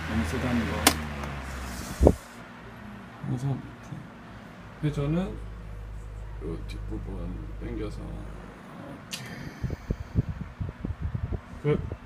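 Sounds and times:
fan airflow rumbling on microphone: 0.0 - 12.0.

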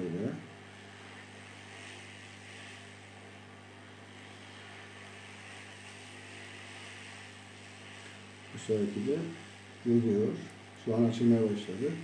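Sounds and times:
hot air blower hissing: 0.0 - 12.0
low electrical hum: 0.0 - 12.0.

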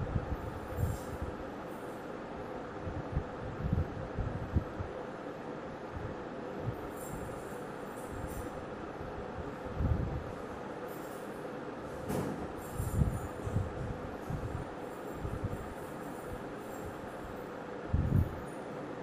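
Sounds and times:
steady rumbling hum: 0.0 - 19.0.

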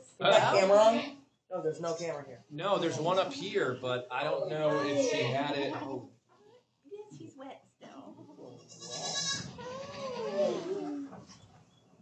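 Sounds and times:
goat bleating: 8.6 - 10.9.

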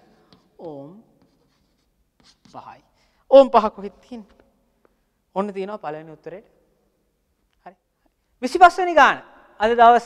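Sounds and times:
chalk tapping and scratching: 0.1 - 2.9.

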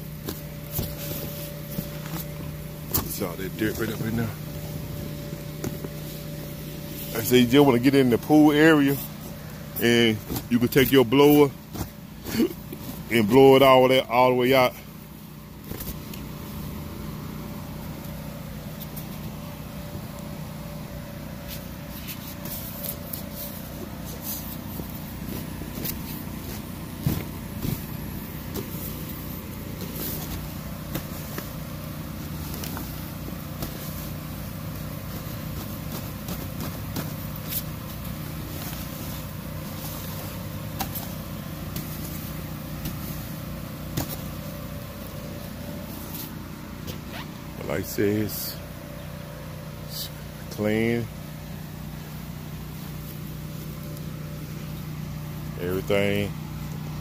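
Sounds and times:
brush scrubbing vinyl: 0.0 - 14.0, 21.1 - 47.4
electric blower motor humming: 14.8 - 47.6.

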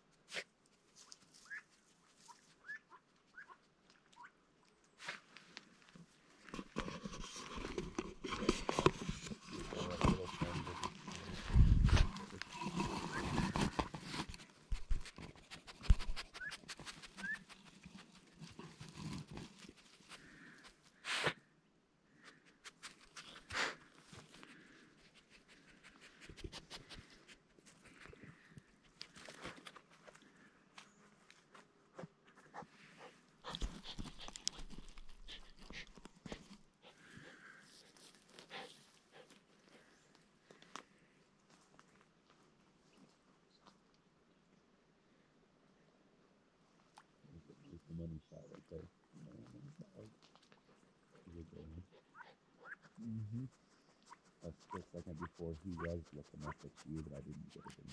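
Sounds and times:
rustling: 5.0 - 21.3, 22.2 - 44.0
dog panting and sniffing: 6.6 - 20.8, 22.5 - 24.4, 25.0 - 28.1, 32.0 - 40.0, 50.6 - 57.9.

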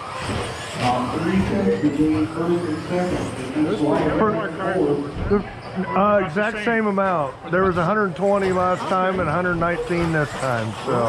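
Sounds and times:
men talking: 0.8 - 11.0.

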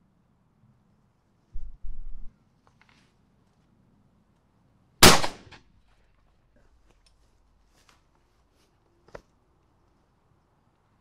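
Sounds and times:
shotgun shot: 5.0 - 5.6.

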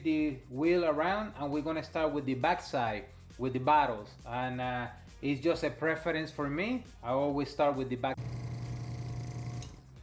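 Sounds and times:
airbrush compressor buzzing hum: 8.2 - 9.9.

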